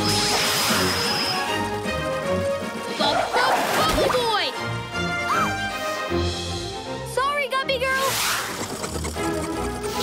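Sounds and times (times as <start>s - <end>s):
cartoon action music: 0.0s - 10.0s.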